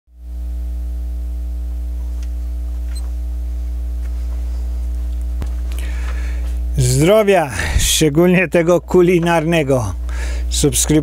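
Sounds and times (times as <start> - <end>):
electrical mains hum: 0.1 - 11.0.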